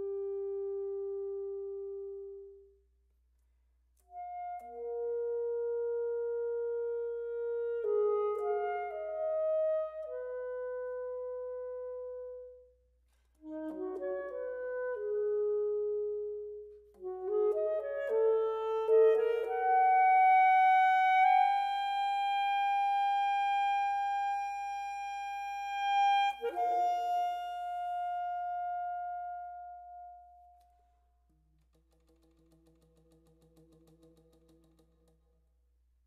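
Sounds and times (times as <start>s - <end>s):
alto saxophone playing slow melody: 0.0s - 2.7s, 4.1s - 12.7s, 13.4s - 30.7s.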